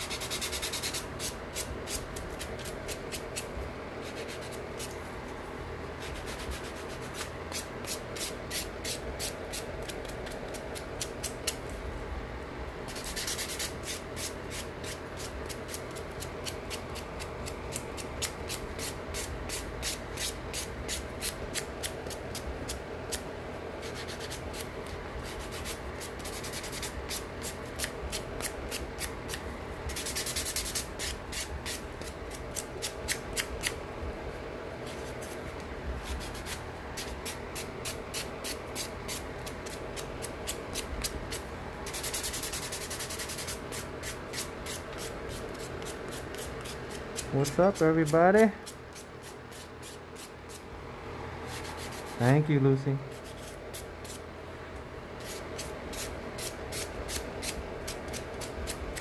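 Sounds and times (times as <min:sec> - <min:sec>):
nail buffer scraping nails: 0:34.9 - 0:50.6.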